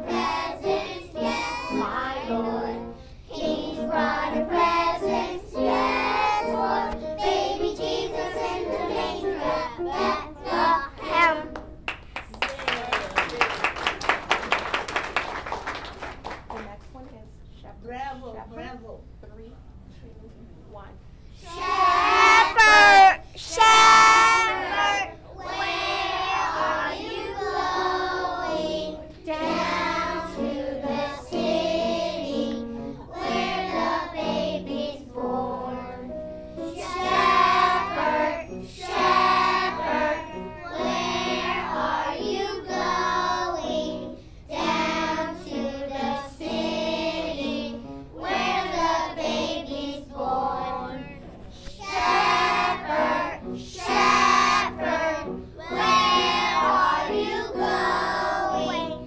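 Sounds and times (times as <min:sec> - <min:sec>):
children singing a carol: 0:00.0 - 0:11.4, 0:21.4 - 0:59.0.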